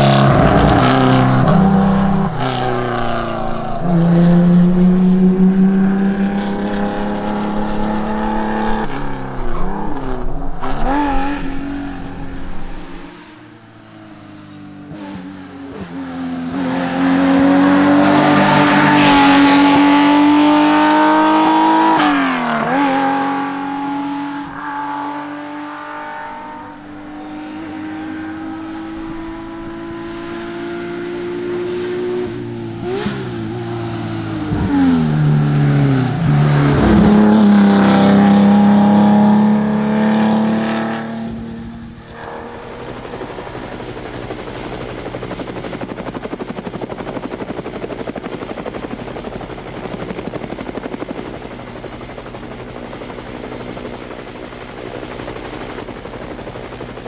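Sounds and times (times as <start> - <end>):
rally car engine revving past: 0.0 - 13.4, 14.9 - 42.6
drone propellers buzzing: 0.0 - 14.2, 15.1 - 57.0.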